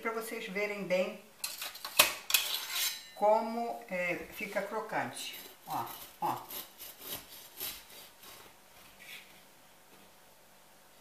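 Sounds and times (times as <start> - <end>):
knife sawing through crusty bread: 5.2 - 8.5.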